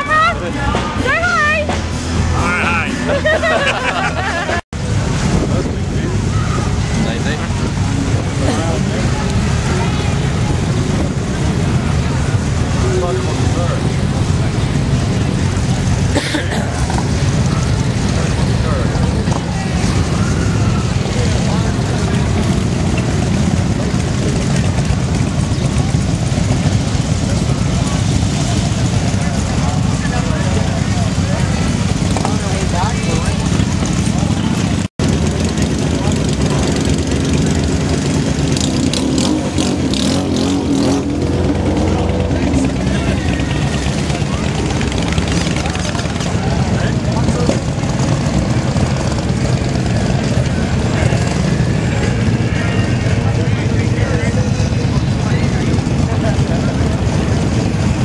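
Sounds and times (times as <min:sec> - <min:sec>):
crowd chatter: 0:00.0 - 0:58.0
motorcycle engines rumbling: 0:00.0 - 0:58.0.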